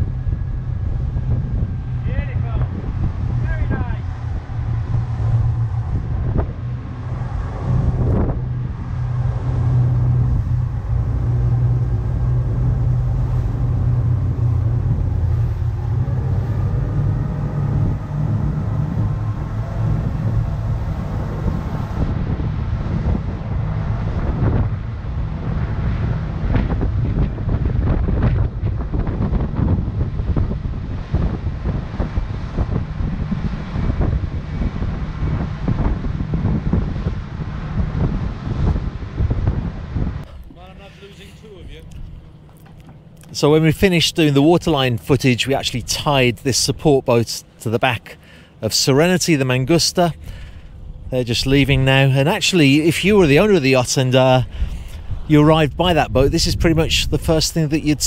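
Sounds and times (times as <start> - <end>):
motorboat engine drone: 0.0 - 58.0
water rushing past hull: 0.0 - 58.0
wind buffeting microphone: 0.0 - 58.0
boat hull slapping waves: 0.1 - 46.8.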